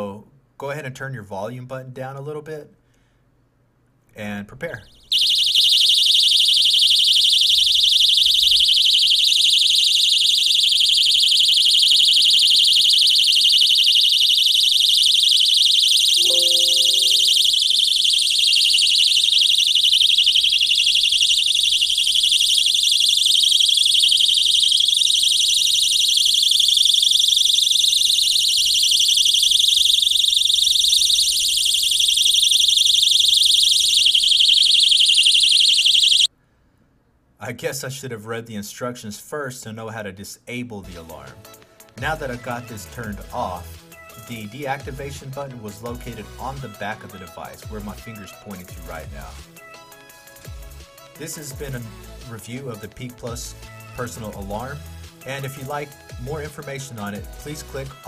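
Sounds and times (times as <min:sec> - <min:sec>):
shrill electronic alarm tone: 0:05.1 - 0:36.3.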